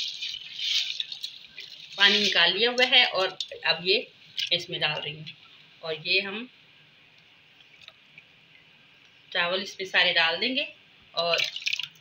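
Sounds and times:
rice pouring into water: 0:00.0 - 0:02.3.

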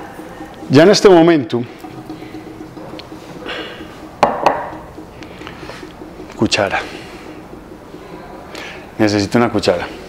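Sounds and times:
glass bowl knocking on board: 0:04.2 - 0:04.8.

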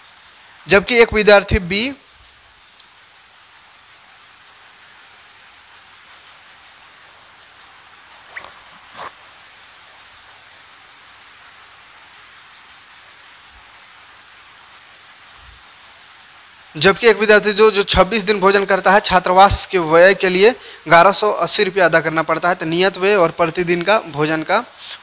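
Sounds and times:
steady background hiss: 0:00.0 - 0:25.0
faint short sounds: 0:08.2 - 0:09.3.

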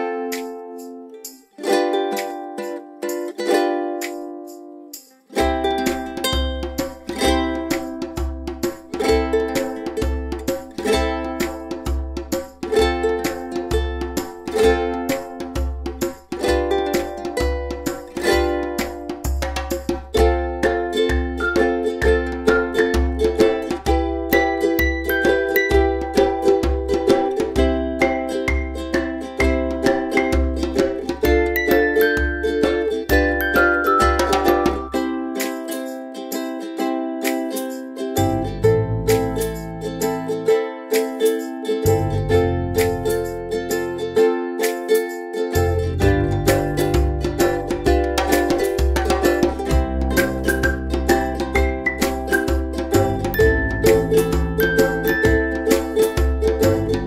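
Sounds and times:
plucked string music: 0:00.0 - 0:57.0
steady low beat: 0:15.5 - 0:35.0, 0:38.2 - 0:40.2, 0:45.6 - 0:57.0.

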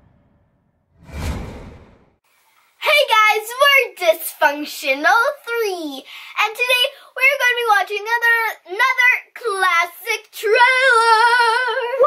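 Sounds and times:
deep low hit: 0:01.0 - 0:02.2
whoosh sound effect: 0:01.0 - 0:02.2.

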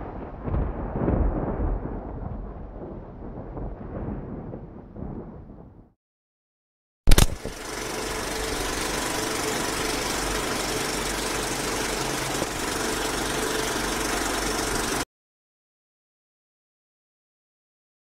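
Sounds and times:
loud click: 0:07.1 - 0:07.6
film projector whirring clatter: 0:07.1 - 0:15.1.

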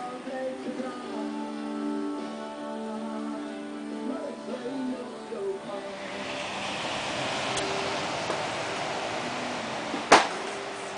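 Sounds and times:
distant ocean surf: 0:05.8 - 0:10.9.

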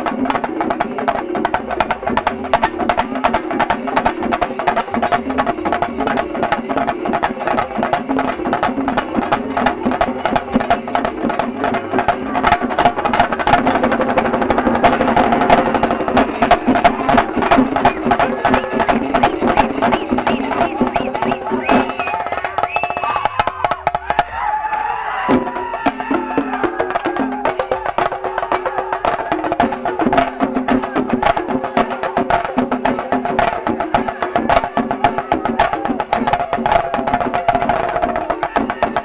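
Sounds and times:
drums struck with sticks: 0:00.0 - 0:39.0.

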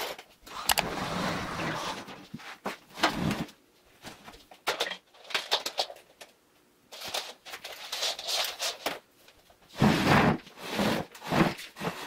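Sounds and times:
items scraping on a desk: 0:09.7 - 0:12.0.

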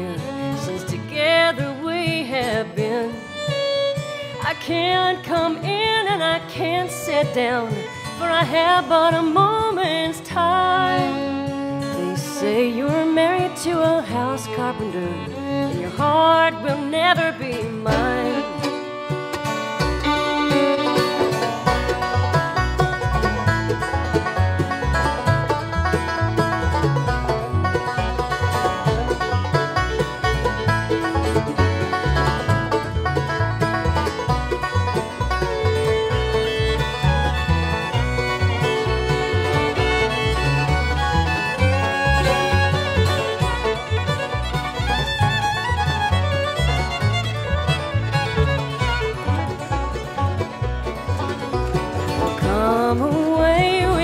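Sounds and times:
banjo picking: 0:00.0 - 0:54.0
fiddle bowed notes: 0:00.0 - 0:54.0
plucked strings and bass: 0:00.0 - 0:54.0.

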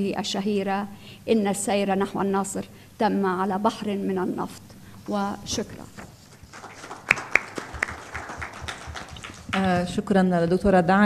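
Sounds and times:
audience applause: 0:06.4 - 0:09.9
sharp claps: 0:06.4 - 0:10.0.

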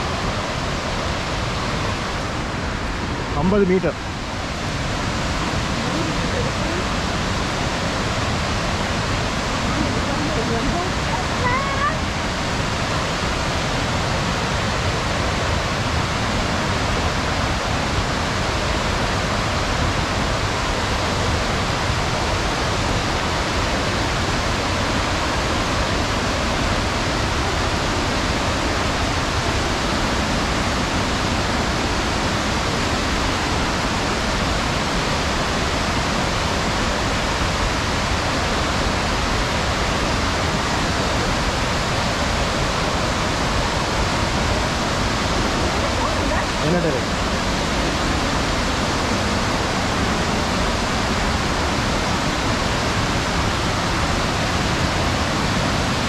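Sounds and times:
waterfall rushing: 0:00.0 - 0:56.0.

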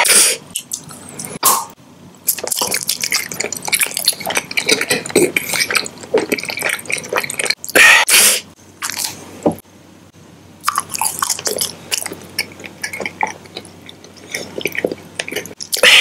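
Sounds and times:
wet chewing mouth sounds: 0:02.3 - 0:07.8, 0:10.6 - 0:16.0.

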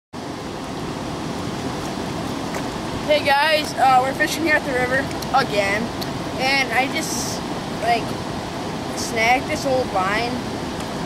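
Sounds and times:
wind: 0:00.1 - 0:11.0
river water rushing: 0:00.2 - 0:11.0.

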